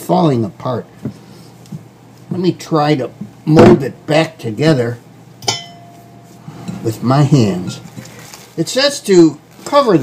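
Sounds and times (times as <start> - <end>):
glass bowl clink: 5.4 - 6.8.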